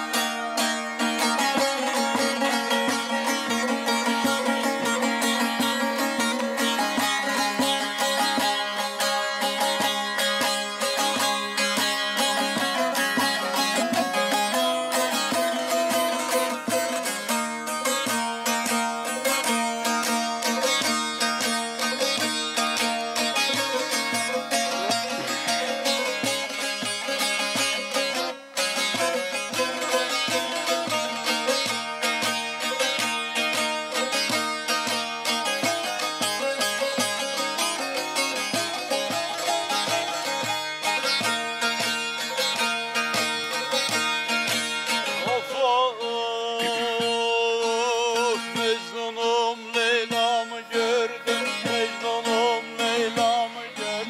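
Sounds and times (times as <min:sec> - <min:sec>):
long-necked lute rapid plucking: 0:00.0 - 0:54.0.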